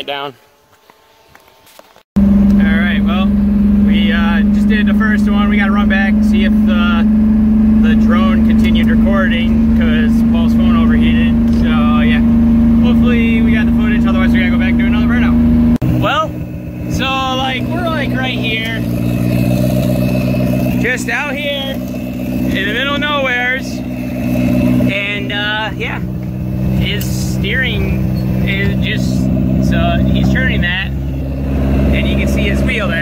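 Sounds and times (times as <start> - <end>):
car engine humming: 0.1 - 33.0
voices talking: 2.5 - 33.0.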